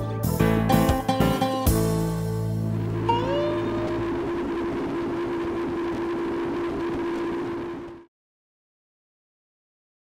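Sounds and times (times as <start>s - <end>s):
outboard motors running: 2.4s - 8.1s.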